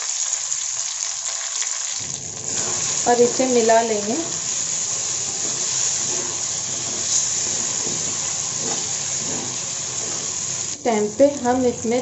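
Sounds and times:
vegetables sizzling in hot oil: 0.0s - 12.0s.

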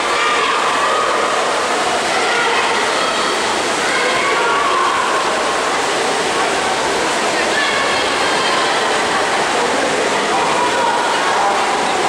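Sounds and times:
swimmers splashing in indoor pool: 0.0s - 12.0s.

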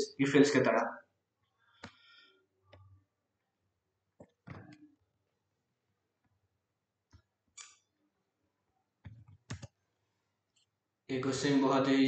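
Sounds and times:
keyboard and mouse clicks: 4.2s - 4.9s, 7.1s - 7.9s, 9.0s - 9.8s.

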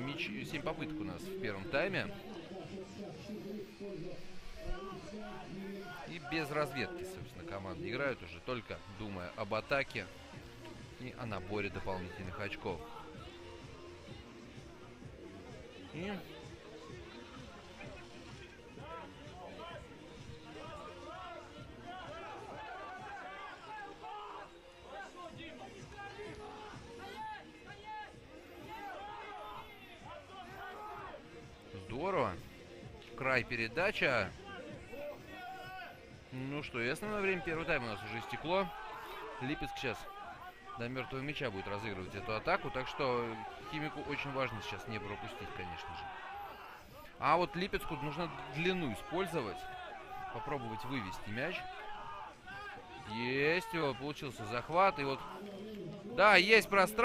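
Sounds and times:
commentary: 0.0s - 14.4s, 15.0s - 57.0s
indistinct men's voices talking: 0.0s - 57.0s
murmur of crowd chatter: 0.0s - 57.0s.

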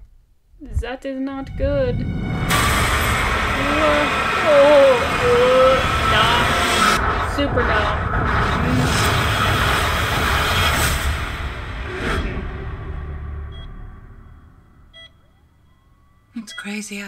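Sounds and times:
rushing wind roar: 1.6s - 11.9s.

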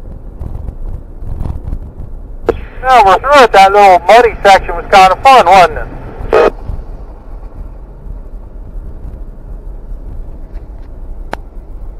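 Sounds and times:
engine low rumble: 0.0s - 11.9s
tyre and drivetrain noise: 0.0s - 11.9s.

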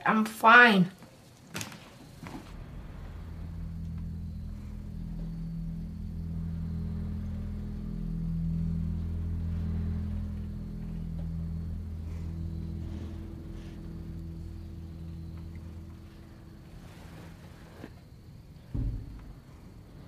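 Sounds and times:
low dark horror drone music: 2.2s - 20.0s.

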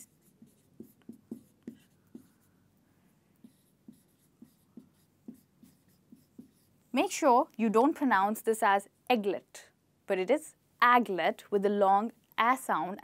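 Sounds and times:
marker writing on whiteboard: 0.0s - 6.9s.

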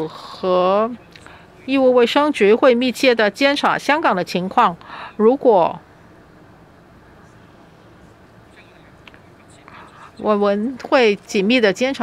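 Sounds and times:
low steady background hiss: 0.0s - 12.0s.

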